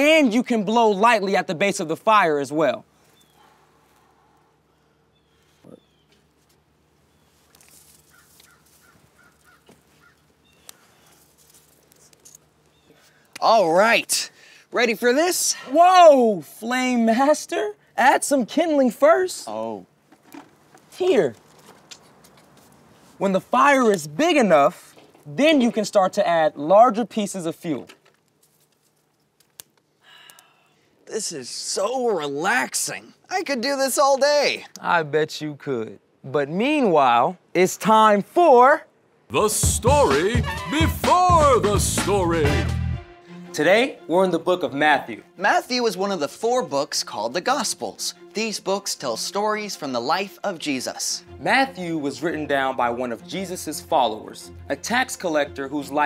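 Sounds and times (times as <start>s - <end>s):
fire crackling and popping: 7.5s - 13.7s, 23.7s - 25.8s, 27.6s - 30.5s.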